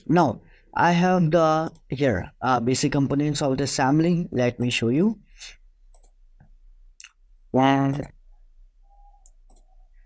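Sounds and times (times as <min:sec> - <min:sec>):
faint computer mouse clicks: 0:05.9 - 0:06.2, 0:09.2 - 0:09.7.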